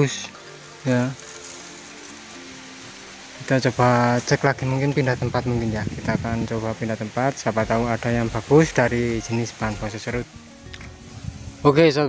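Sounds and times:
faint sustained musical tones: 0.0 - 12.0
outdoor background hiss: 0.0 - 12.0.

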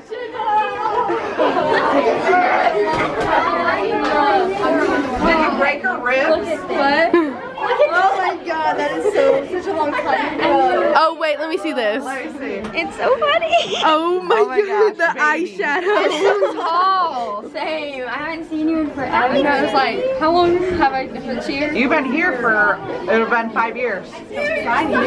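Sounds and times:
girls talking over each other: 0.0 - 25.0.

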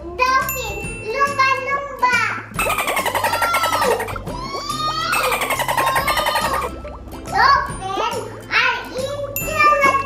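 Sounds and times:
background music: 0.0 - 10.0
dolphin whistles: 2.6 - 6.8.

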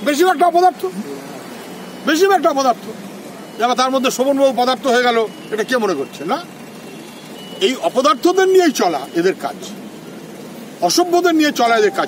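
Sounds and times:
street background noise: 0.0 - 12.0
faint high beep: 1.6 - 2.8, 3.4 - 6.3, 6.9 - 9.4, 11.7 - 12.0
man speaking: 10.8 - 12.0.

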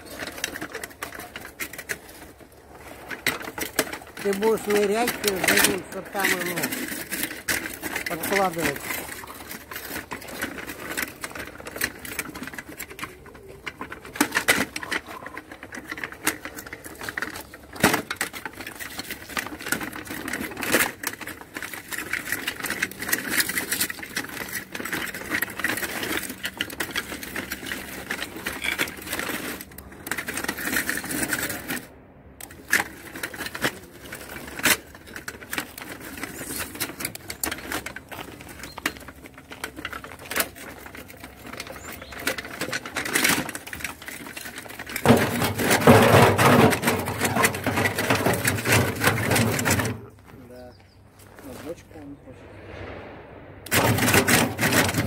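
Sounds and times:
tracks clattering over wood: 0.0 - 52.1, 53.6 - 55.0.

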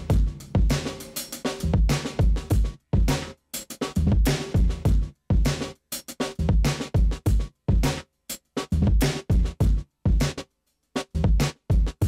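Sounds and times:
drum kit loop: 0.0 - 12.0.

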